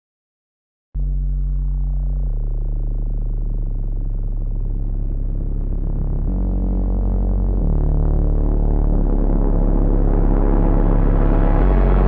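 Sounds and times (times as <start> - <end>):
low sustained bass chords: 1.0 - 12.0.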